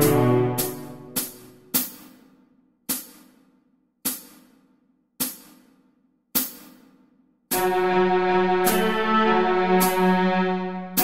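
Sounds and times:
metronome-style percussion clicks: 0.0 - 2.2, 8.6 - 9.0.

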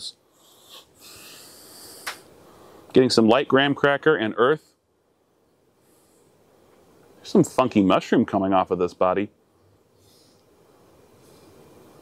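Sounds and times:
man inhaling through nose: 0.3 - 2.9, 10.0 - 10.5.

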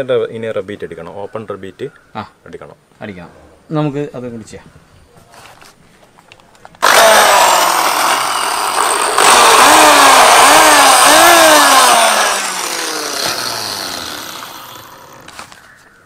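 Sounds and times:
electric drill boring into rubber: 6.8 - 15.4.

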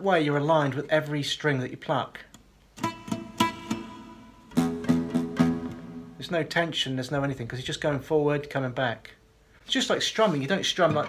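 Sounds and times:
acoustic guitar notes picked: 2.8 - 6.3.

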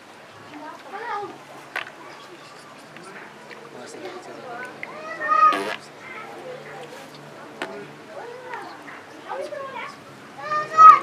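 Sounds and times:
murmur of people talking: 0.0 - 11.0.

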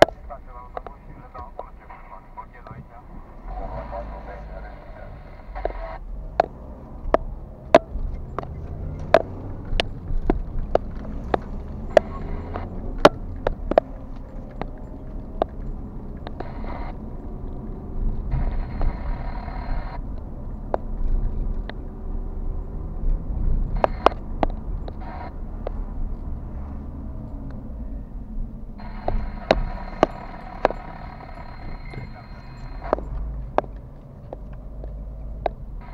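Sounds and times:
road and engine rumble: 0.0 - 35.9
sharp evenly spaced ticks: 4.2 - 17.7, 28.8 - 35.9.

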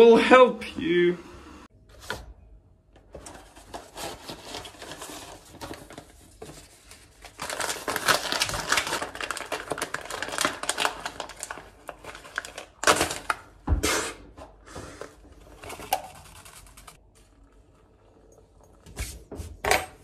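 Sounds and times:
paper bag rustling: 3.1 - 13.3, 15.4 - 17.6
paper coffee filter crinkling: 3.2 - 13.5, 15.4 - 17.9.

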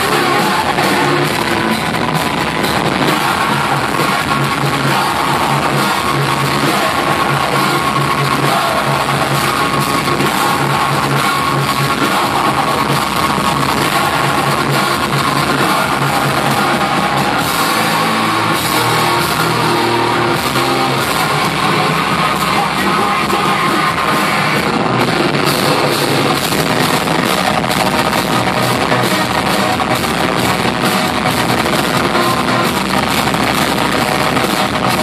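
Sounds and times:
live heavy rock band: 0.0 - 35.0.

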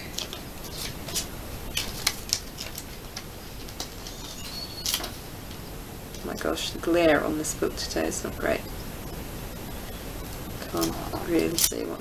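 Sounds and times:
paper sticker crackles: 0.0 - 5.2.

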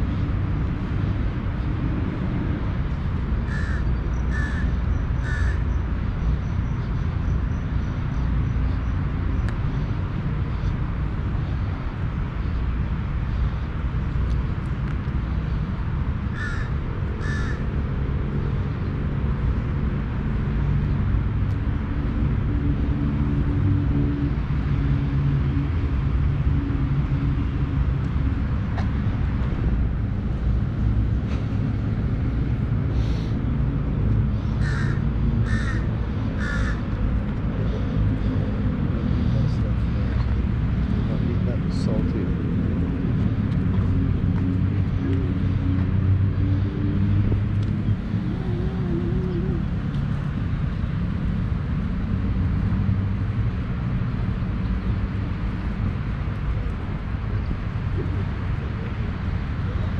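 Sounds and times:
steady low rumble: 0.0 - 59.9
crows cawing: 3.5 - 5.7, 16.3 - 17.7, 34.5 - 37.0.

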